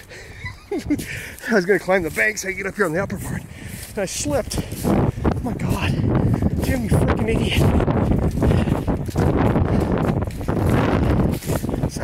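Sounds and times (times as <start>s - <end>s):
grass rustling: 0.0s - 12.0s
wind buffeting microphone: 0.0s - 12.0s.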